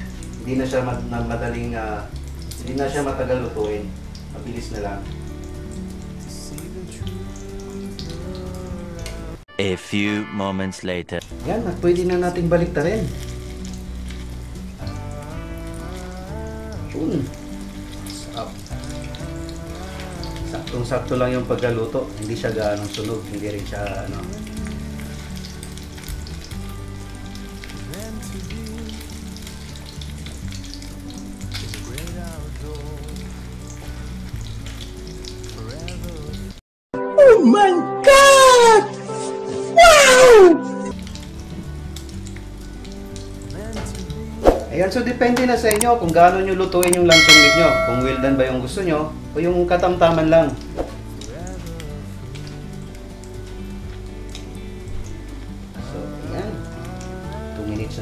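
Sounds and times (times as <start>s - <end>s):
meat sizzling in hot oil: 0.0s - 8.9s, 11.3s - 36.6s, 40.9s - 58.0s
background music: 0.0s - 58.0s.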